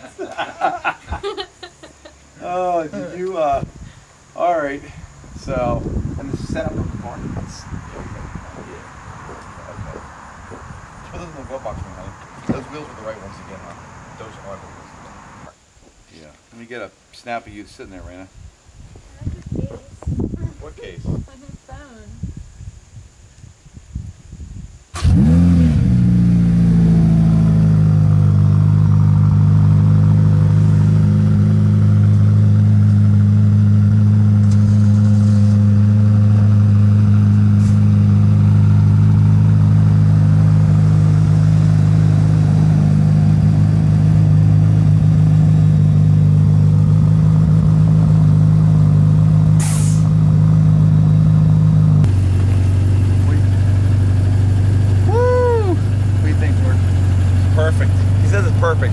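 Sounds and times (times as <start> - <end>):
car engine starting and idling: 24.9 - 58.9.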